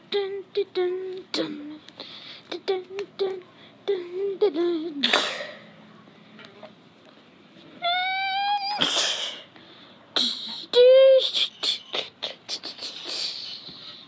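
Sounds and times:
child squealing: 7.8 - 9.2.

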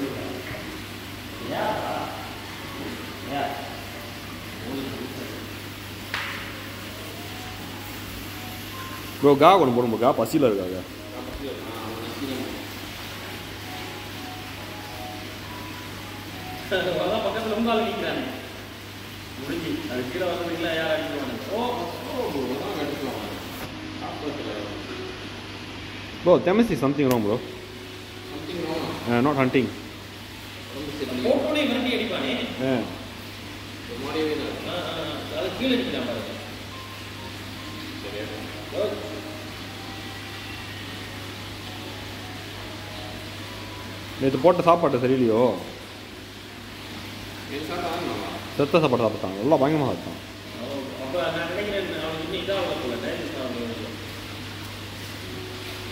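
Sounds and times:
machinery humming and hissing: 0.0 - 55.9.

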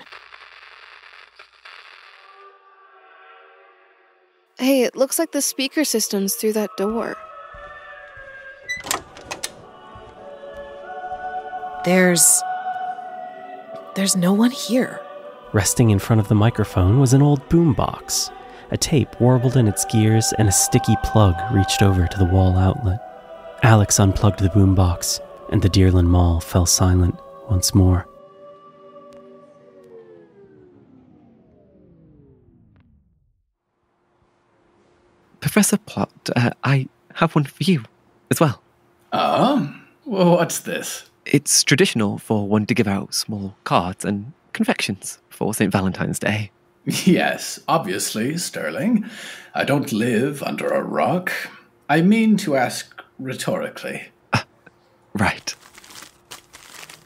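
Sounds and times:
droning music score: 6.4 - 32.9
door clunks: 8.2 - 10.2
cassette tape winding down: 29.1 - 33.3.

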